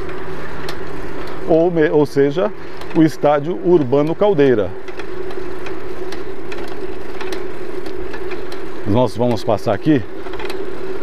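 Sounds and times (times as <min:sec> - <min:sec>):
bicycle riding hum: 0:00.0 - 0:11.0.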